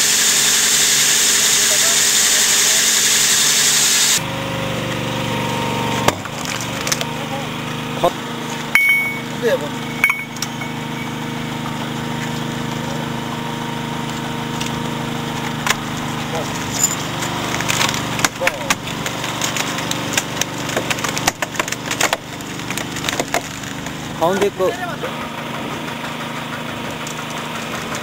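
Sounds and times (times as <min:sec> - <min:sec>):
hydraulic power unit running: 0:00.0 - 0:28.0
rock cracking and snapping: 0:17.5 - 0:24.0.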